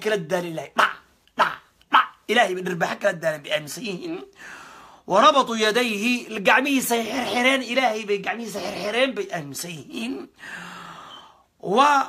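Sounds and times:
person speaking: 0.0s - 4.4s, 5.0s - 10.6s, 11.6s - 12.0s
long audible breath: 4.4s - 5.1s, 10.4s - 11.5s.

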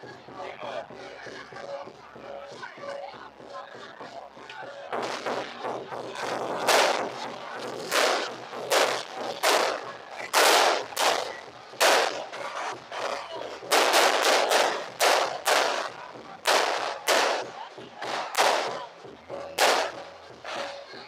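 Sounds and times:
fireworks bangs: 6.6s - 18.9s, 19.6s - 20.7s.

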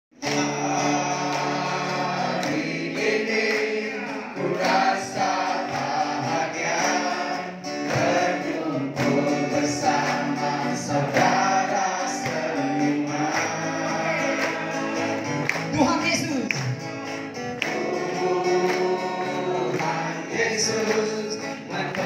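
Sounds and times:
musical accompaniment: 0.1s - 22.0s
group singing worship song: 0.2s - 15.7s, 16.8s - 22.0s.

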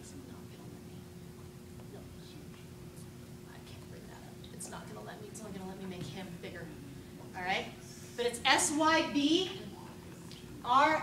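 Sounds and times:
steady low hum: 0.0s - 11.0s
woman whispering: 3.4s - 4.6s.

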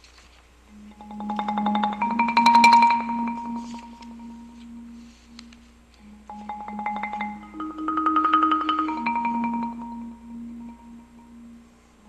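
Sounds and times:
marimba rolled chord: 0.7s - 12.0s
soft marimba stroke: 0.7s - 12.0s.

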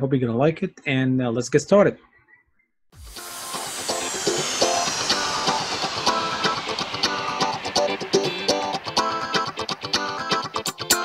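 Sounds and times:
high falling sweep: 3.0s - 10.5s.

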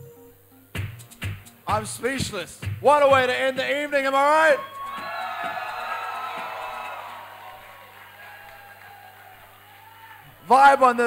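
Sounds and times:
background music: 0.0s - 7.7s
audience cheering and applauding: 3.7s - 11.0s.

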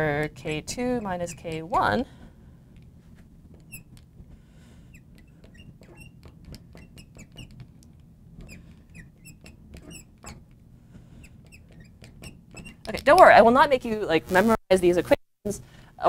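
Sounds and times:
marker squeaking on glass: 0.4s - 2.0s, 3.5s - 4.0s, 4.8s - 7.7s, 8.4s - 13.2s.

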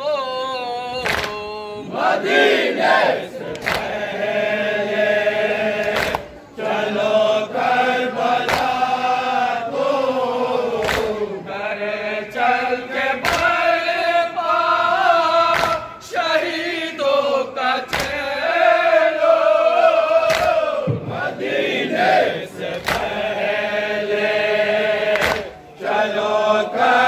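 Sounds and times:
men chanting in unison: 0.0s - 27.0s.

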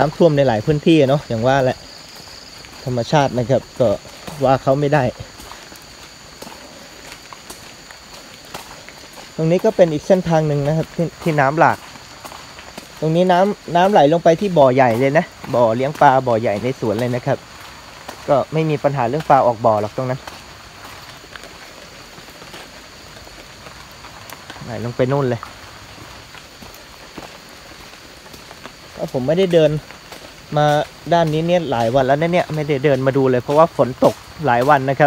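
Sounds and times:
footsteps through grass: 0.0s - 35.0s
runoff water running: 0.0s - 35.0s
rustling undergrowth: 0.0s - 35.0s
faint ticks: 20.0s - 24.6s.

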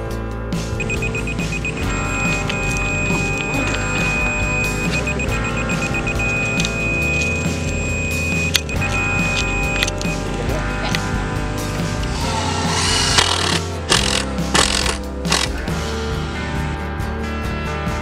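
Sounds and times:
background music: 0.0s - 18.0s
laser level receiver beeping: 0.8s - 11.0s.

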